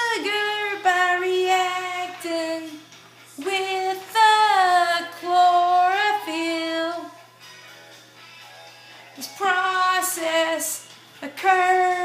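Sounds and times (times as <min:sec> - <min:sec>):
woman singing long notes: 0:03.4 - 0:07.2.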